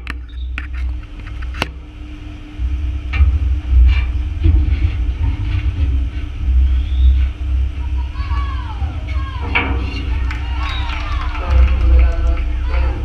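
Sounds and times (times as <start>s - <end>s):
low unsteady rumble: 0.0s - 13.0s.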